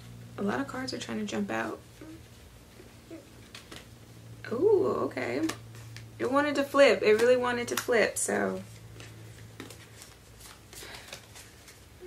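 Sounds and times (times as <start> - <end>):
cards shuffling: 3.3 - 4.0, 8.6 - 12.0.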